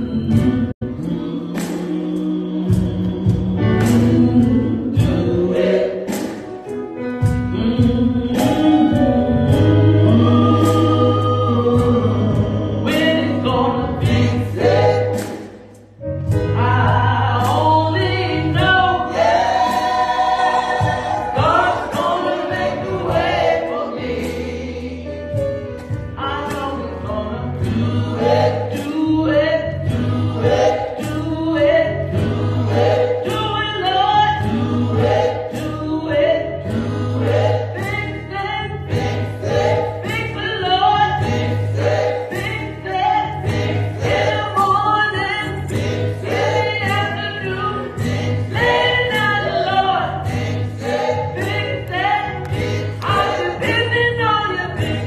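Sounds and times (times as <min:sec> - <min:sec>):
band playing with bass line: 0:00.0 - 0:55.0
gospel choir singing: 0:00.0 - 0:55.0.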